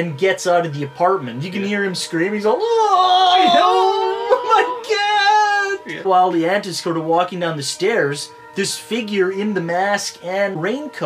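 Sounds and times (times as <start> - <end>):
man mock screaming: 2.5 - 6.2.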